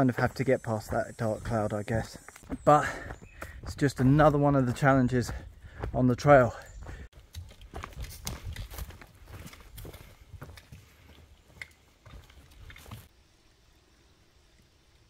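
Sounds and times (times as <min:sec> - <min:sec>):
footsteps on leaf-littered trail: 0:00.0 - 0:13.1.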